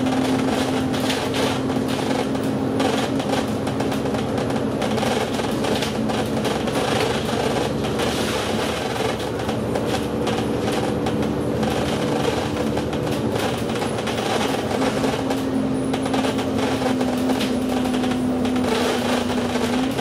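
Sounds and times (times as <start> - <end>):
bus body rattling: 0.0 - 20.0
bus engine drone: 0.0 - 20.0
road noise: 0.0 - 20.0.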